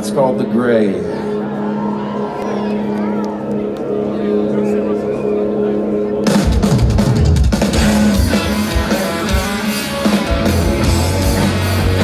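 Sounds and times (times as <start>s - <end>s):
faint crowd voices: 0.0s - 12.0s
rock band droning note: 2.2s - 12.0s.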